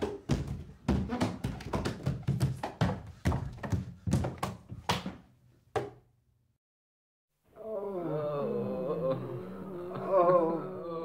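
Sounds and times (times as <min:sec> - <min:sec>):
feet thumping down stairs: 0:00.0 - 0:06.0.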